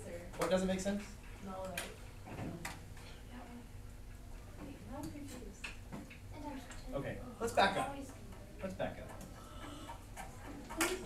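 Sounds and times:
classroom room noise: 0.0s - 11.0s.

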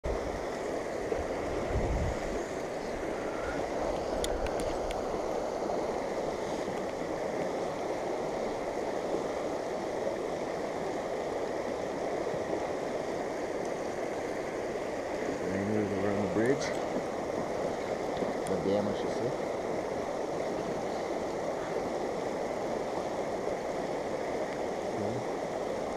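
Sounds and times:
river rushing over rocks: 0.1s - 25.9s
faint ticks: 4.2s - 5.0s, 13.6s - 13.8s.

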